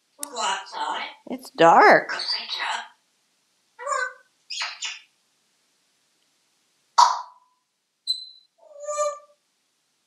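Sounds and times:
parrot squawking: 2.1s - 3.0s, 3.8s - 5.1s, 7.0s - 7.4s, 8.1s - 9.4s
parrot pitched call: 3.8s - 5.1s, 7.0s - 7.4s, 8.1s - 9.4s
parrot whistling: 8.1s - 9.3s.

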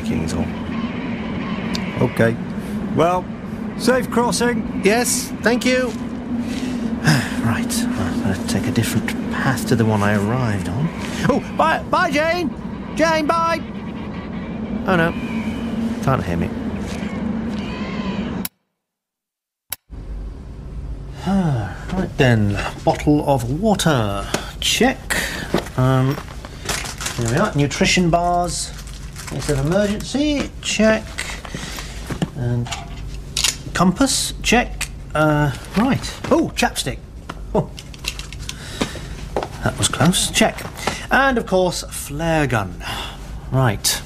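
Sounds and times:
steady low hum: 0.0s - 18.5s, 19.7s - 44.0s
seabird calls: 10.8s - 18.4s
low steady background noise: 19.9s - 44.0s.

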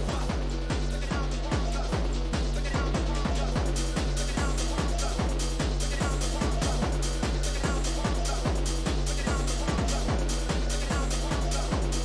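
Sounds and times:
deep bass line: 0.0s - 12.0s
electro dance music: 0.0s - 12.0s
kick drum: 0.0s - 12.0s.

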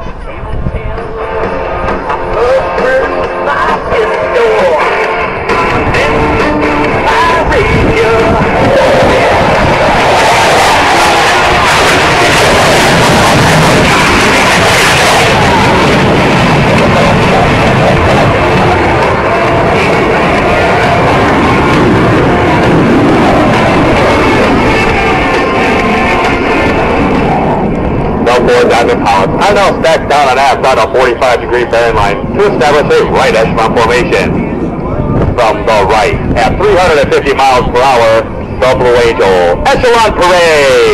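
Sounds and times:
music from loudspeakers: 0.0s - 9.8s
jet aircraft flying past: 0.0s - 40.9s.

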